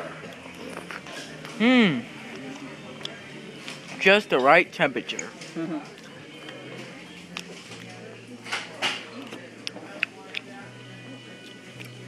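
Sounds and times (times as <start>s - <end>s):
background music: 0.0s - 12.0s
faint chatter: 0.0s - 12.0s.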